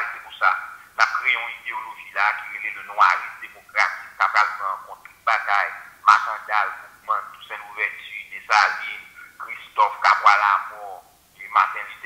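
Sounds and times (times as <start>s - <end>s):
tinny speech from phone speaker: 0.0s - 12.0s.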